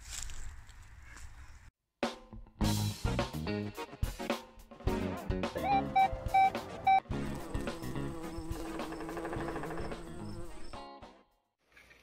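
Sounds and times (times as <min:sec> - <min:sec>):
short high notes: 0:05.6 - 0:07.0
buzzing drone: 0:07.0 - 0:10.7.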